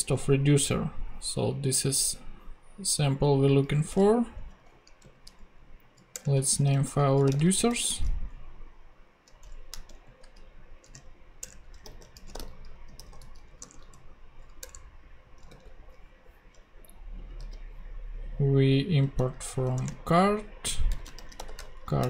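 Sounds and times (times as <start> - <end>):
computer keyboard keystrokes: 6.0 - 6.4, 7.1 - 7.6, 9.3 - 15.9, 20.9 - 22.0.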